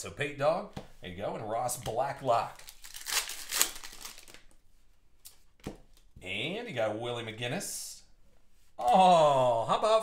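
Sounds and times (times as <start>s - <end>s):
plastic wrapper tearing and crinkling: 2.4s - 4.6s.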